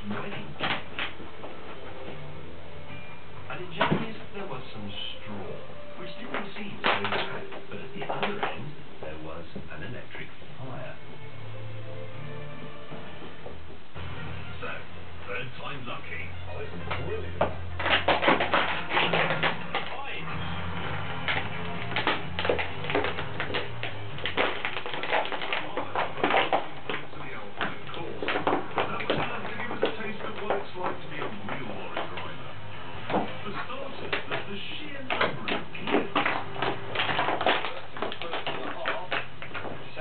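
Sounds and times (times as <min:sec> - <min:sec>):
television music and voices: 0:00.0 - 0:40.0
dog gnawing a toy: 0:05.2 - 0:08.7, 0:16.8 - 0:40.0.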